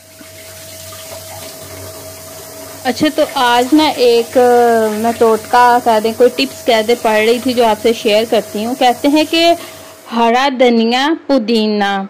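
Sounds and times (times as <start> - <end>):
tap water splashing: 0.0 - 9.9.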